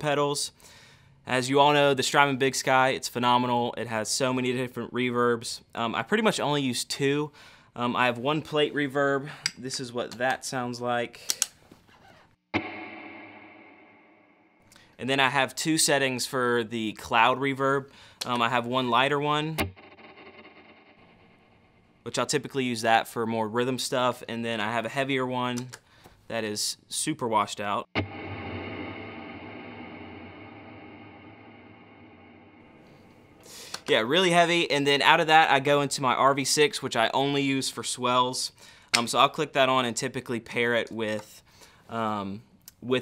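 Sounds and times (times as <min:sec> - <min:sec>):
electric guitar chord with reverb: 0:12.6 - 0:14.4, 0:28.0 - 0:33.6.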